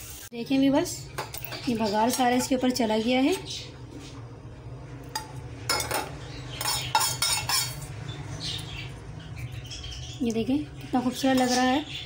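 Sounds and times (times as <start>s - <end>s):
metal spoon clinking on cookware: 1.1s - 3.4s, 5.1s - 7.9s, 11.1s - 11.8s.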